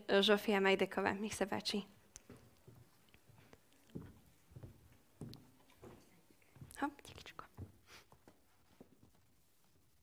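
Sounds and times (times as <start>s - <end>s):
faint whispered voice: 5.9s - 8.0s.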